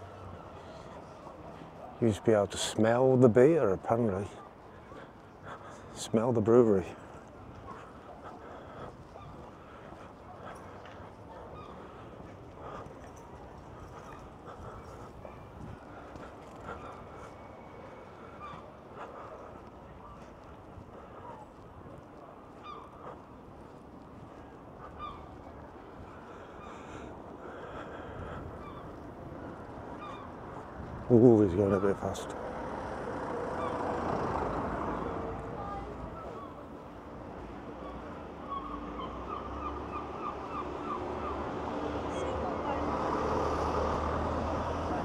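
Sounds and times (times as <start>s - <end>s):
faint outdoor background: 0.0s - 45.0s
seagull calls: 16.7s - 18.7s, 22.6s - 23.2s, 24.8s - 25.4s, 28.6s - 29.0s, 29.9s - 30.3s, 37.8s - 41.5s.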